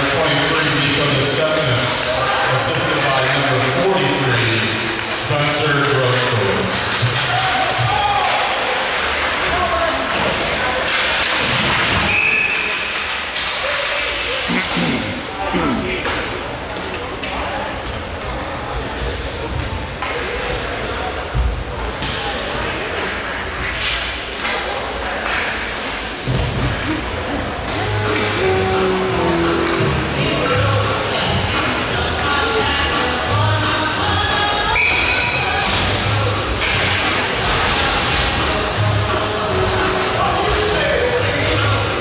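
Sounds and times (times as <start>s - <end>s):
puck and sticks hitting boards: 4.1s - 14.1s, 23.0s - 26.8s, 34.8s - 38.6s.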